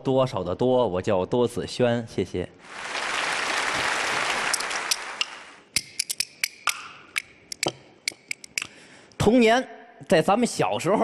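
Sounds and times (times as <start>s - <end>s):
audience applauding: 2.6s - 5.6s
bamboo clappers clack: 4.9s - 8.7s.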